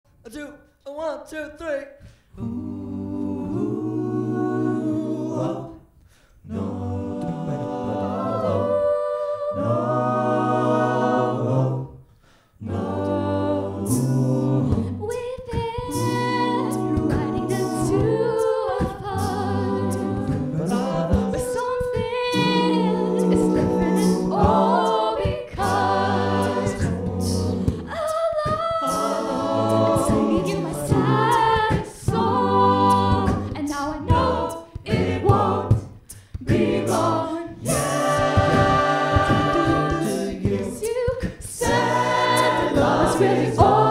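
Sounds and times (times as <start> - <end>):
vocal percussion: 1.9 - 43.9
backing vocal harmonies: 2.0 - 43.9
woman singing lead: 14.7 - 26.0, 27.6 - 35.7.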